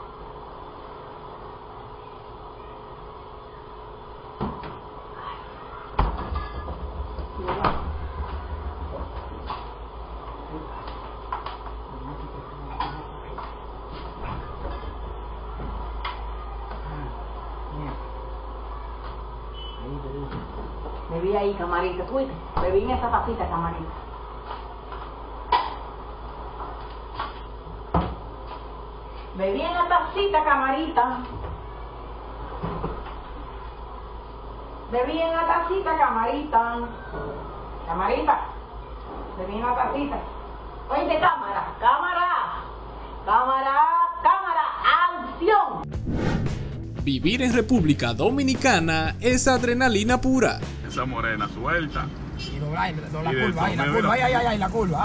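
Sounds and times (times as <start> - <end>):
faint steady hum: 0.0 - 45.9.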